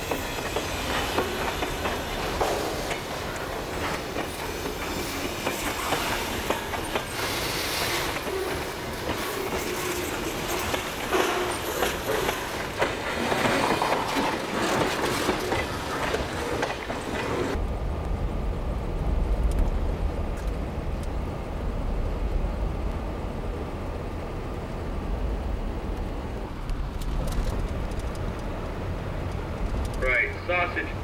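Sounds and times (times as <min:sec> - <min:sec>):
train wheels rolling on rails: 0:00.0 - 0:31.0.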